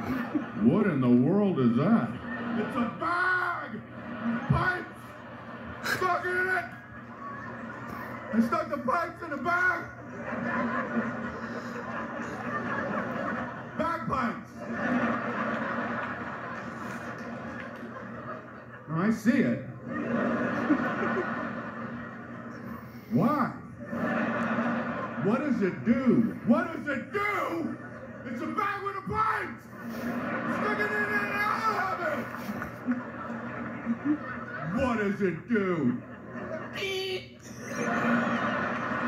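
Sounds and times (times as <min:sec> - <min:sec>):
audience laughing on television: 0:00.0 - 0:39.0
man talking: 0:00.6 - 0:03.8, 0:34.6 - 0:36.0.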